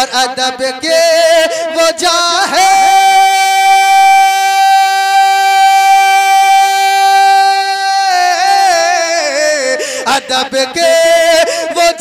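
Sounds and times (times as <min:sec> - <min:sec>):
man singing a long held note: 0:00.0 - 0:12.0.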